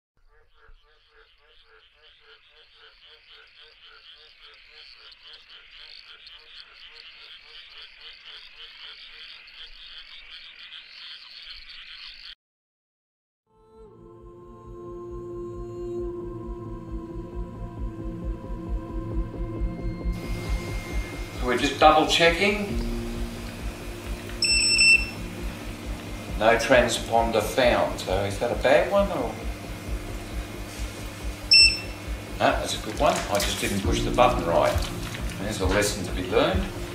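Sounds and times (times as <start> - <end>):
chorus of higher frog calls: 0.2 - 12.4, 20.4 - 27.8, 31.2 - 36.9
low frog croak: 0.2 - 12.4, 20.4 - 36.9
short high beep: 24.4 - 25.2, 31.5 - 32.0.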